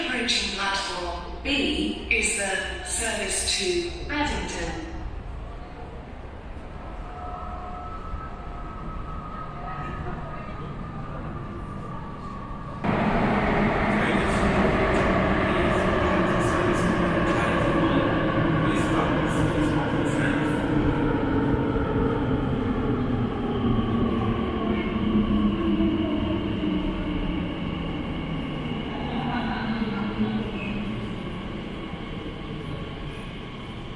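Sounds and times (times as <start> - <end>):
train rumble: 3.2 - 33.9.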